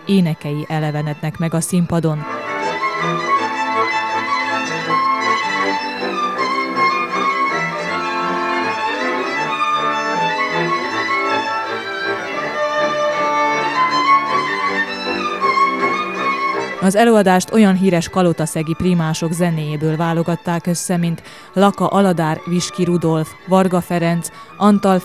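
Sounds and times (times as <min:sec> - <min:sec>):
folk string band playing: 0:00.0 - 0:25.0.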